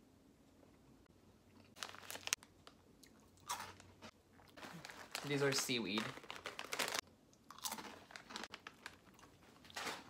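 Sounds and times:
crunching crisp snack: 0:01.6 - 0:10.0.

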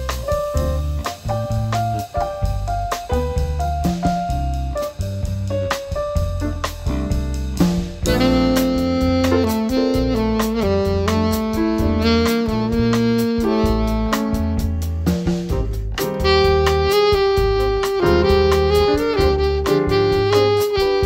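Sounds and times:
bass line: 0:00.0 - 0:21.0
drums with light cymbals: 0:00.0 - 0:21.0
piano chords: 0:00.0 - 0:21.0
saxophone holding long notes: 0:08.0 - 0:14.9, 0:16.1 - 0:21.0.

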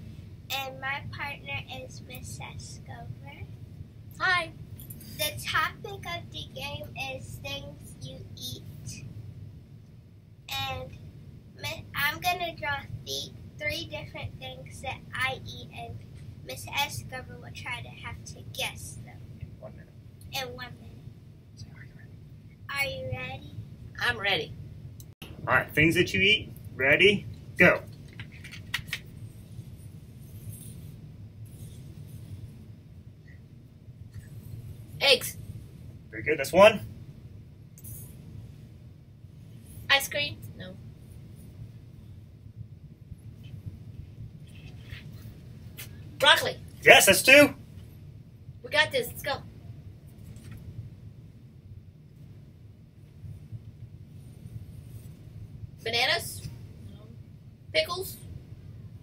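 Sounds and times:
low room hum: 0:00.0 - 0:59.0.

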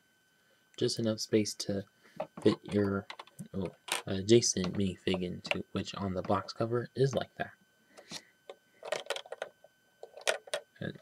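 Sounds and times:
plastic toy bricks clicking: 0:08.8 - 0:10.6.

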